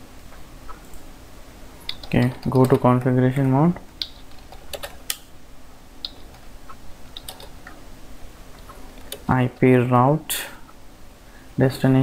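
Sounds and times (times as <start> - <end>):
computer keyboard typing: 1.9 - 5.2, 7.1 - 7.8, 8.6 - 9.7.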